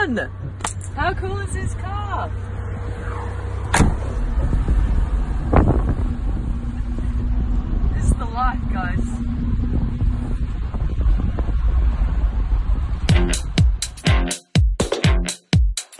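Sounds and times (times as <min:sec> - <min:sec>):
low vehicle rumble: 0:00.0 - 0:14.1
wind buffeting microphone: 0:00.3 - 0:13.8.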